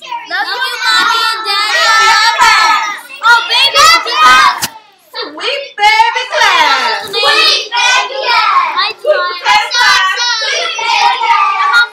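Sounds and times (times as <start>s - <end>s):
children's voices: 0.0s - 11.9s
child singing: 6.6s - 11.9s.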